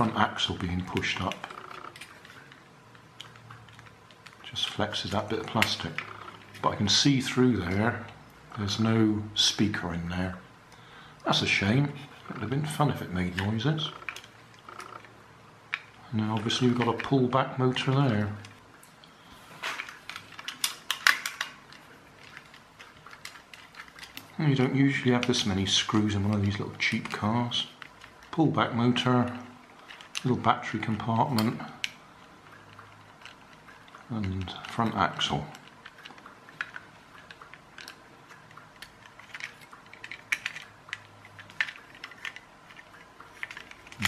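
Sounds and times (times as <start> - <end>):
plastic toy parts clicking: 0.0 - 8.9, 9.5 - 44.0
screwdriver clicks and scrapes: 32.6 - 44.0.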